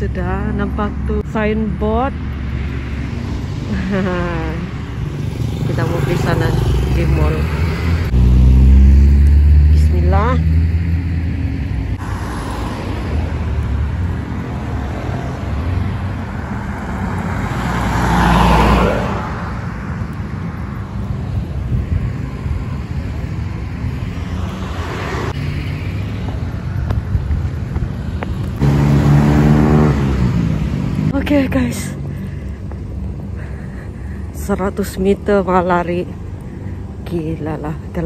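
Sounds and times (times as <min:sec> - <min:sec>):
traffic rumble: 0:00.0 - 0:38.0
car passing by: 0:05.0 - 0:19.9, 0:23.6 - 0:26.8, 0:28.4 - 0:32.3.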